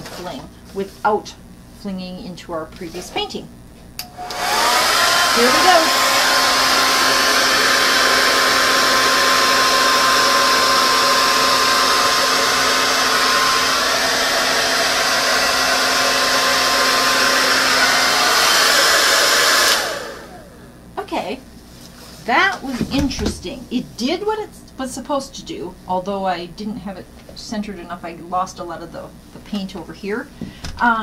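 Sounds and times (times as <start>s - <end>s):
hair dryer running: 4.0s - 20.9s.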